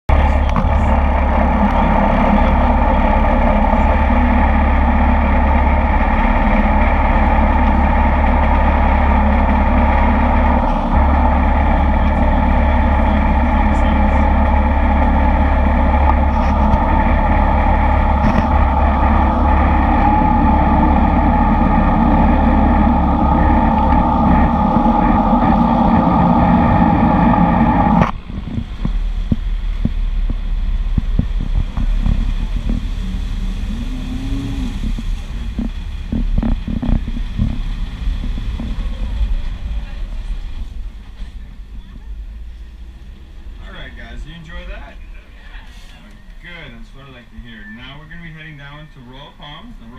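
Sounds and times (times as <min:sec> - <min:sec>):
bus engine running under load: 0:00.0 - 0:49.9.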